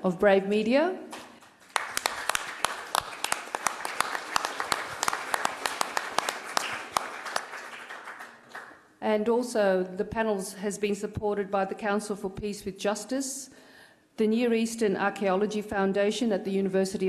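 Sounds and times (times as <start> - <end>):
audience applauding: 1.6 - 8.8.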